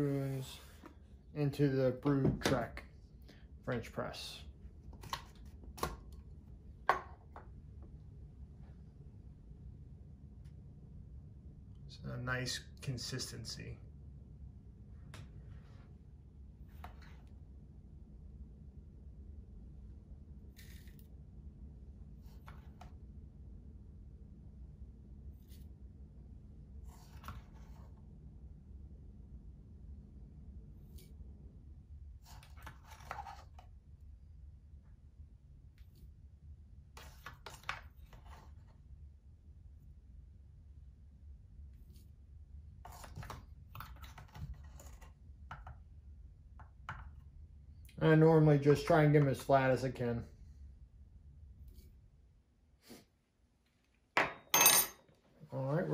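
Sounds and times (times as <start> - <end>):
low steady hum: 0.0 - 55.9.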